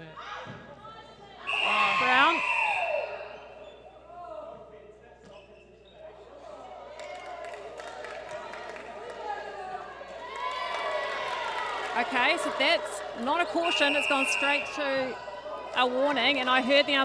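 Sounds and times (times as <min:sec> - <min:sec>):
faint talk echoing: 0:00.0 - 0:02.5, 0:03.1 - 0:17.0.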